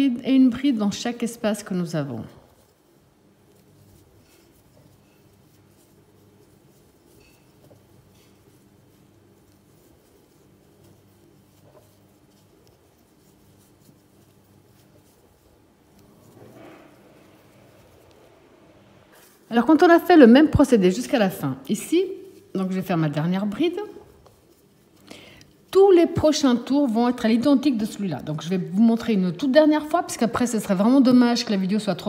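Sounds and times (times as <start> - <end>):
crochet hook scratching yarn: 0.0 - 31.8
low steady hum: 0.0 - 32.0.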